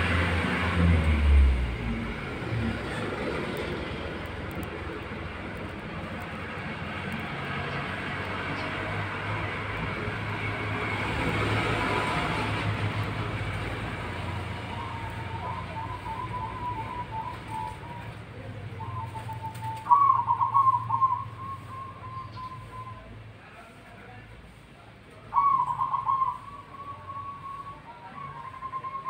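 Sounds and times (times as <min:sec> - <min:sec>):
background rumble and hiss: 0:01.0 - 0:09.0
dove cooing: 0:14.3 - 0:22.9, 0:25.3 - 0:29.0.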